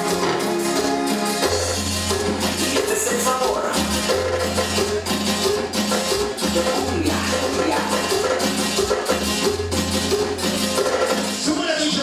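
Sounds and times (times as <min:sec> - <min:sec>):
hand percussion: 0:00.0 - 0:11.5
live latin dance band: 0:00.0 - 0:12.0.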